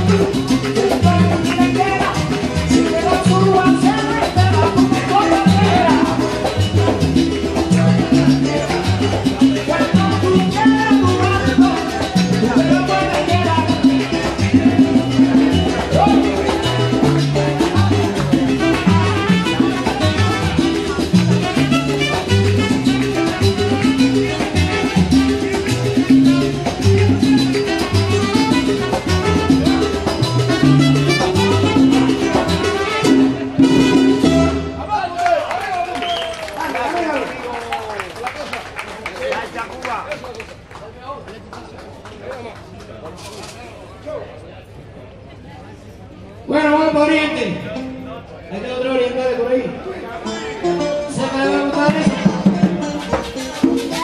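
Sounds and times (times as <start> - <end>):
salsa band playing: 0.0 - 40.0, 46.4 - 54.0.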